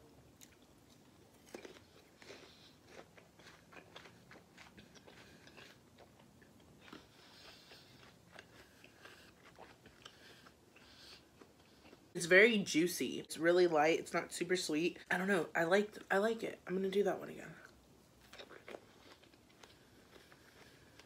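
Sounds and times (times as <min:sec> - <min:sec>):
chewing crisp fruit: 0:00.3 - 0:12.2, 0:17.6 - 0:21.0.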